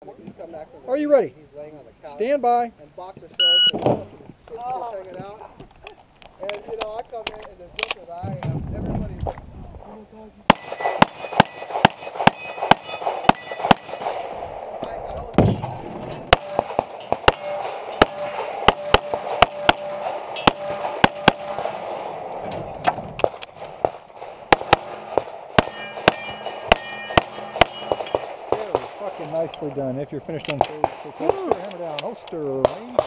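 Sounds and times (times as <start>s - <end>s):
steel targets ringing: 10.5s - 14.4s, 25.6s - 28.4s
pistol shots: 10.5s - 14.8s, 15.4s - 29.6s.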